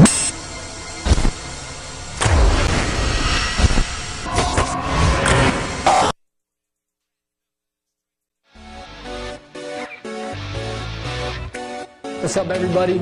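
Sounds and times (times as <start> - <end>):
noisy swooshing: 2.1 - 6.1
deep hits: 2.2 - 5.9.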